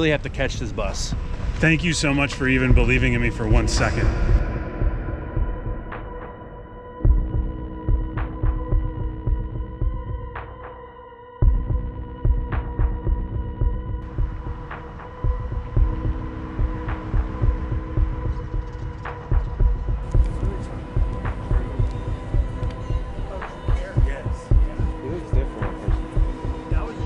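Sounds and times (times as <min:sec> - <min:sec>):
low throbbing thumps: 0:00.0 - 0:10.6, 0:11.4 - 0:27.0
steady hum: 0:14.0 - 0:27.0.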